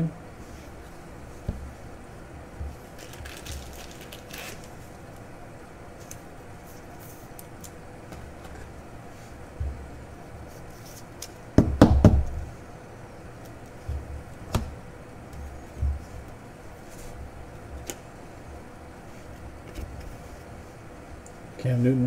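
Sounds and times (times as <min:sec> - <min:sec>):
plastic card sleeves rustling: 0:02.9 - 0:05.0.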